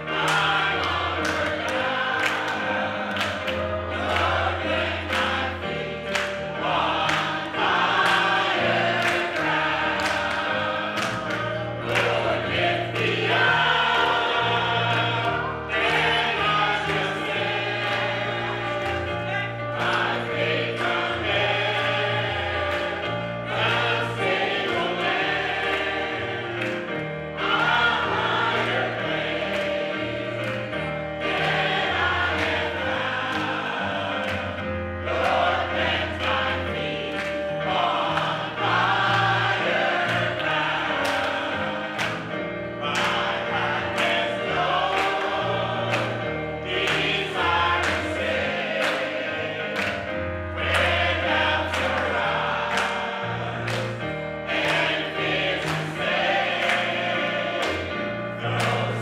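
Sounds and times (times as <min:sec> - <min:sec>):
gospel choir singing: 0:00.0 - 0:59.0
instrumental accompaniment: 0:00.0 - 0:59.0
hand claps: 0:00.2 - 0:42.3, 0:42.9 - 0:57.9, 0:58.5 - 0:59.0.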